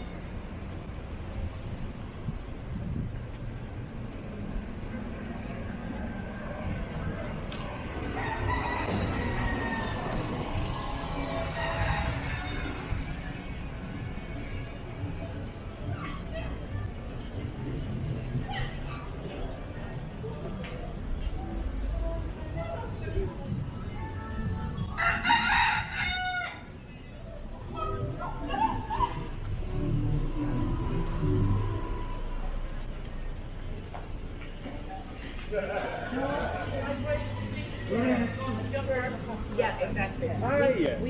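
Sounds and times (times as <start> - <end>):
street hum: 0.0 - 41.0
rooster crowing: 8.0 - 13.2, 25.0 - 26.7
background music: 21.9 - 33.4.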